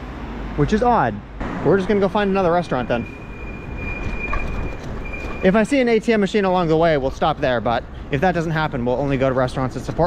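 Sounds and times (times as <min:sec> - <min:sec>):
tyres rumbling on street: 0:00.0 - 0:10.0
high-pitched whine: 0:01.4 - 0:05.7
wind noise: 0:03.0 - 0:05.4.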